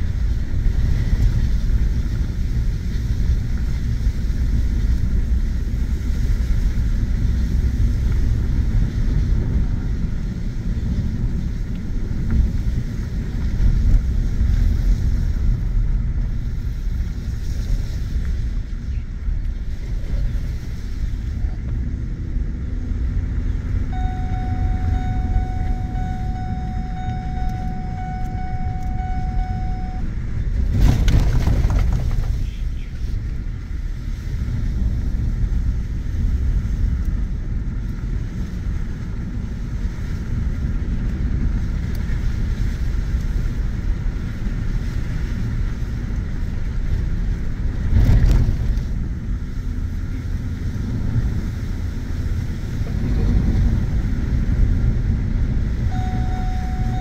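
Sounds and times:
truck engine and tyres on dirt: 0:00.0 - 0:57.0
steady high tone: 0:23.9 - 0:30.1, 0:55.9 - 0:57.0.

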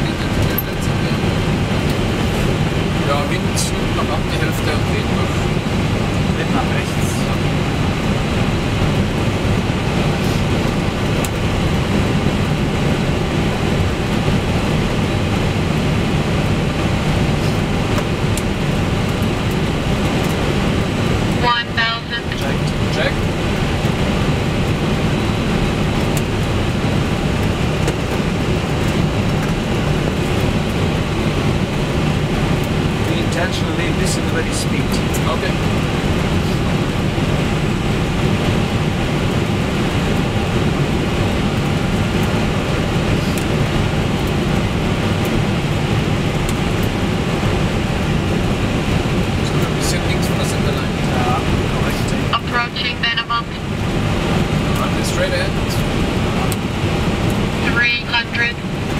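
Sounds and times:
rush of airflow: 0:00.0 - 0:04.0
aircraft engine noise: 0:00.0 - 0:58.9.

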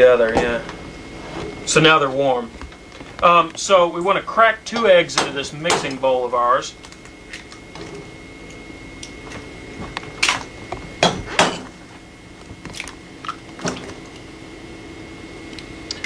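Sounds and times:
background hum: 0:00.0 - 0:16.0.

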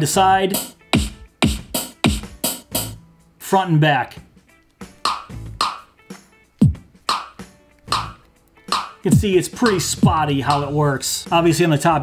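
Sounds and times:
electronic drum and effect samples: 0:00.5 - 0:03.0, 0:05.1 - 0:05.8, 0:06.6 - 0:10.8.

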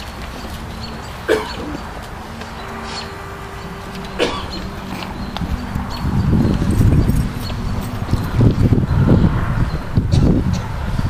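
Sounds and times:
outdoor crowd murmur: 0:00.0 - 0:11.0.

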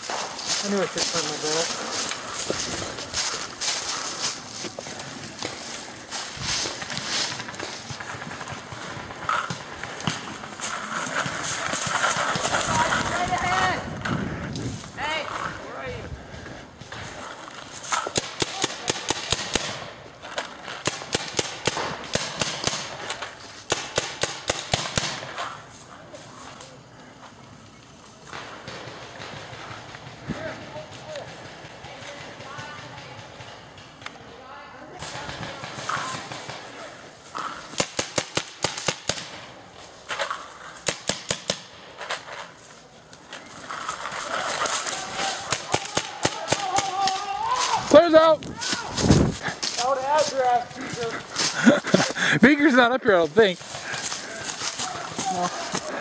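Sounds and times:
footsteps crunching through leaves: 0:00.0 - 0:09.0, 0:46.6 - 0:56.0
voices: 0:00.0 - 0:19.3, 0:25.4 - 0:37.8, 0:42.6 - 0:56.0
paintball markers firing: 0:44.6 - 0:47.3.

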